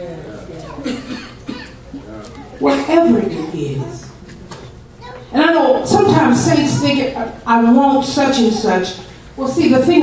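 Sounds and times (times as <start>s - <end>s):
person coughing: 0.8s - 1.8s.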